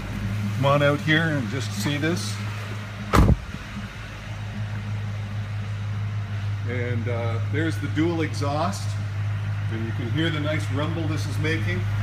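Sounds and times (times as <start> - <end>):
car engine idling: 0.0 - 12.0
car door shutting: 3.1 - 3.6.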